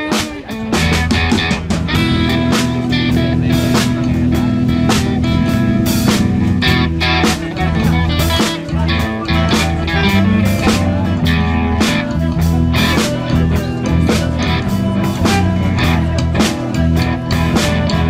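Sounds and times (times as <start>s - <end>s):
bass guitar: 0.0s - 18.0s
drum kit beat: 0.0s - 18.0s
electric guitar: 0.0s - 18.0s.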